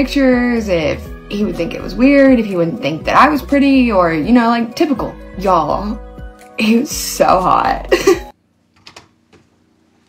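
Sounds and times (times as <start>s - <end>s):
woman's recorded voice: 0.0s - 8.3s
computer keyboard clicks: 8.8s - 9.1s.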